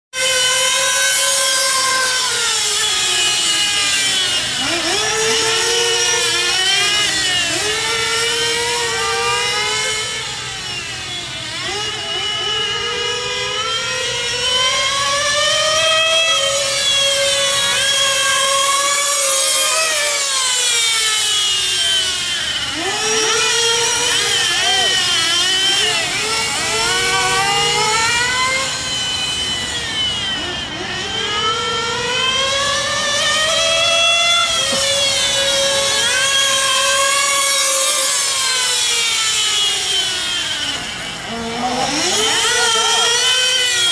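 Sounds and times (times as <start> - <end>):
rc car engine whining: 0.1 - 43.9.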